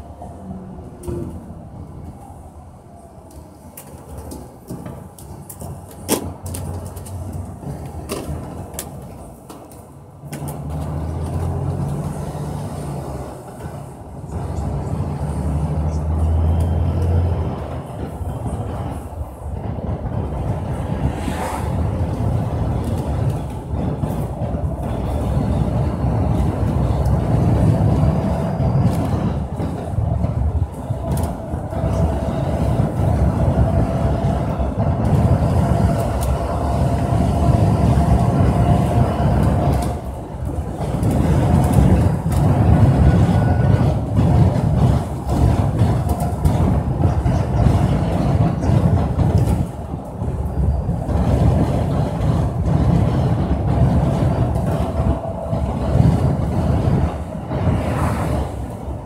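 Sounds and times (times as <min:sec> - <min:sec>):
vehicle engine and road rumble: 0:00.0 - 0:59.0.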